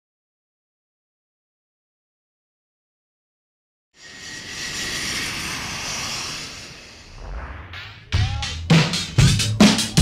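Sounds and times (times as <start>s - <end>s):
jet airliner passing overhead: 4.0s - 8.1s
thin jet whine: 4.0s - 8.2s.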